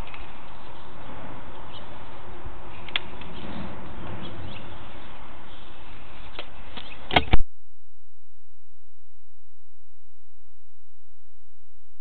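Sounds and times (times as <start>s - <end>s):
faint low hum: 0.0s - 12.0s
camera scraping through pipe: 2.7s - 7.3s.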